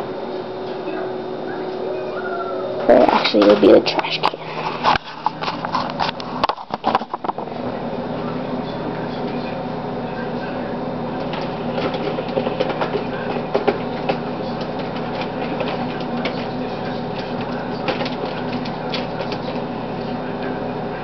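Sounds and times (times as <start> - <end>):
steady background hum: 0.0 - 21.0.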